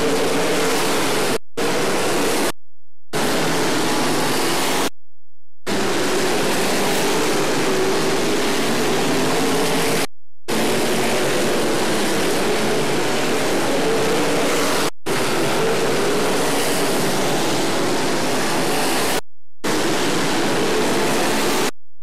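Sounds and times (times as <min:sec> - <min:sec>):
race car engines droning: 0:05.7 - 0:21.6.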